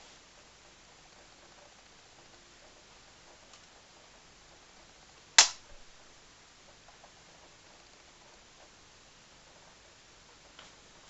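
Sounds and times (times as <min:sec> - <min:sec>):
sharp click: 0:05.4 - 0:05.8.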